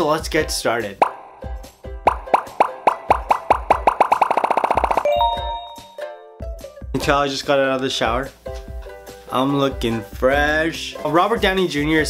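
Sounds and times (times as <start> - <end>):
cartoonish pitched pops: 1.0 - 1.3, 2.0 - 5.1.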